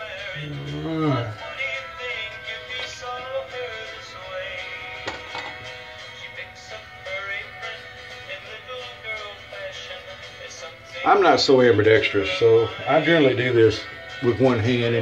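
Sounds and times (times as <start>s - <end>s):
background music with singing: 0.0s - 15.0s.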